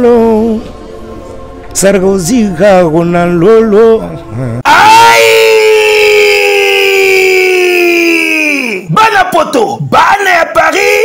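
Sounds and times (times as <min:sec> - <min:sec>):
man shouting a long call: 0:04.6 - 0:09.2.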